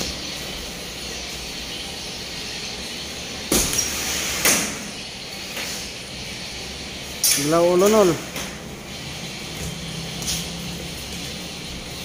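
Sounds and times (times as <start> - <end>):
gym background hiss: 0.0 - 12.0.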